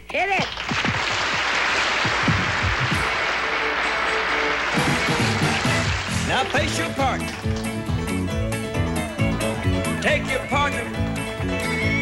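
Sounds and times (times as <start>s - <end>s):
audience applause: 0.4s - 10.0s
country band playing: 2.9s - 12.0s.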